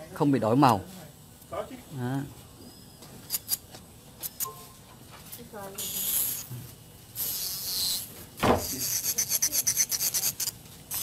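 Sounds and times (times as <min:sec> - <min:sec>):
nail file rubbing on nail: 0:07.2 - 0:11.0
knock: 0:08.4 - 0:08.7.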